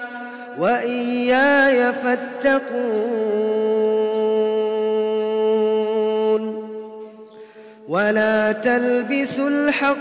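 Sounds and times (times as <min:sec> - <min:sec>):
man chanting recitation: 0:00.0 - 0:10.0.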